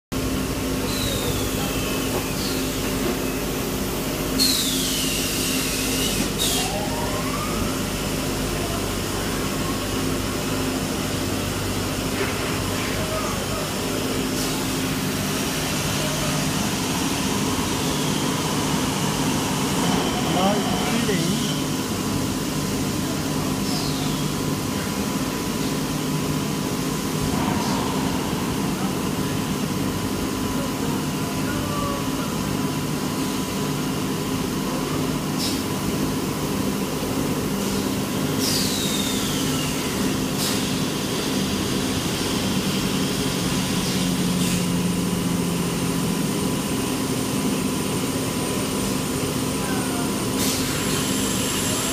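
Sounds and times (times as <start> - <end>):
machinery humming: 0.2 - 51.9.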